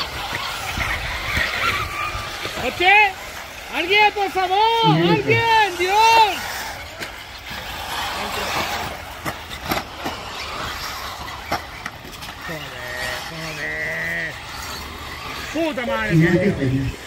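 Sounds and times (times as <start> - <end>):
rc buggies running: 0.0 - 17.0.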